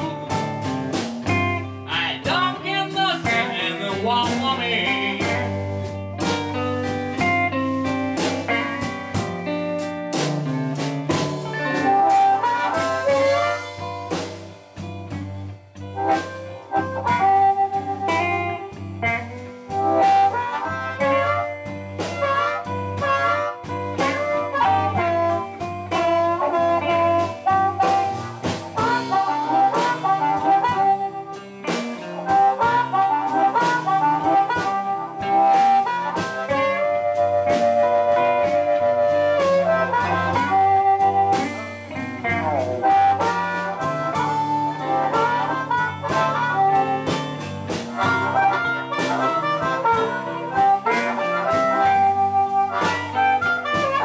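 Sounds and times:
amplified harmonica: 0.0s - 54.0s
drum kit beat: 0.0s - 54.0s
electric guitars: 0.0s - 54.0s.

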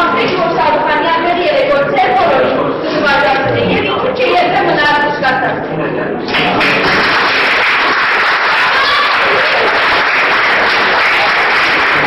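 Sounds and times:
audience applauding: 6.3s - 12.0s.

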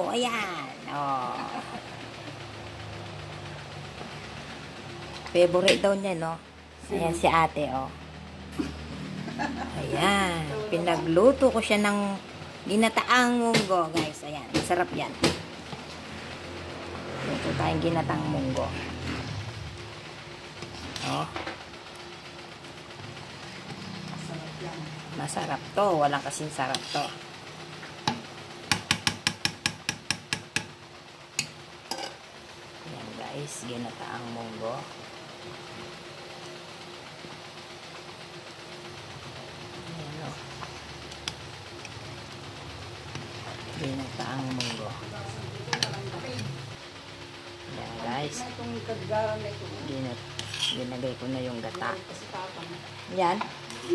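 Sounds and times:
steady low hum: 0.0s - 53.9s.

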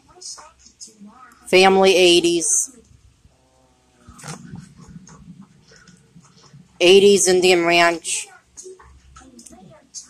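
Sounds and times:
photographs rustling and tapping: 4.0s - 6.8s.

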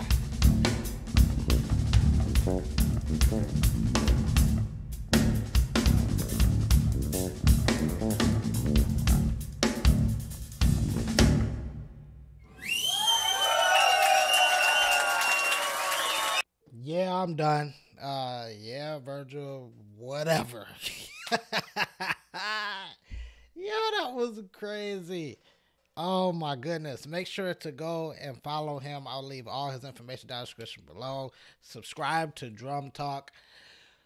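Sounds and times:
bass guitar: 0.0s - 12.0s
drum kit playing fast: 0.0s - 12.3s
audience cheering and whistling: 12.5s - 16.4s.

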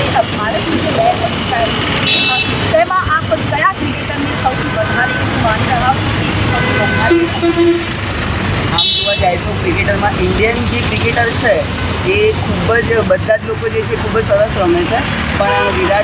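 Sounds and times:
people talking: 0.0s - 7.6s, 8.7s - 16.0s
road traffic: 0.0s - 16.0s
vehicle horn toots: 2.0s - 2.6s, 6.5s - 7.9s, 8.8s - 9.4s, 15.5s - 16.0s.

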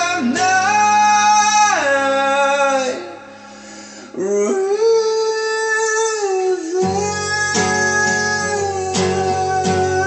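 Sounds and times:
man singing a long note: 4.1s - 10.0s.

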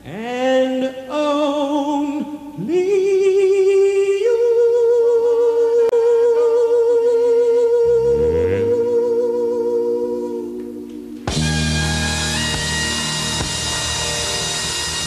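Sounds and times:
person singing long note with vibrato: 6.0s - 11.3s.

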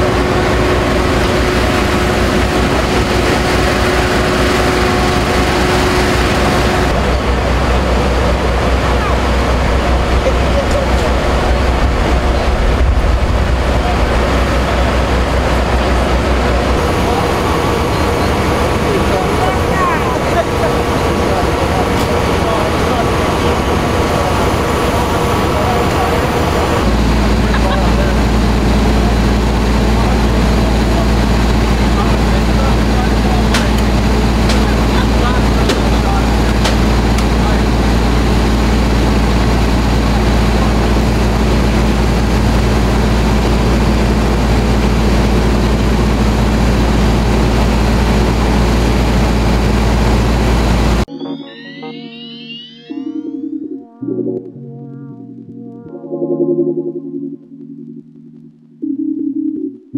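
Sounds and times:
faint steady tones: 0.0s - 49.6s
noisy outdoor hum: 0.0s - 51.1s
truck diesel engine idling: 0.0s - 51.1s.

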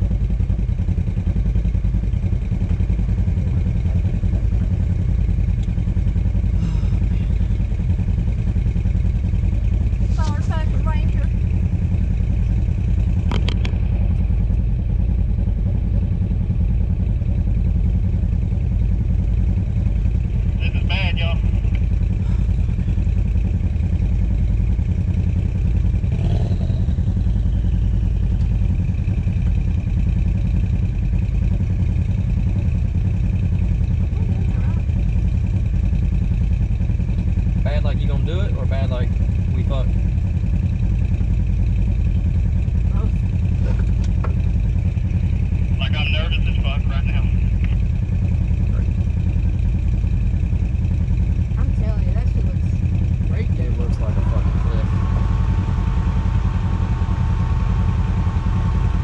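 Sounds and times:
engine running with low drone: 0.0s - 59.0s.

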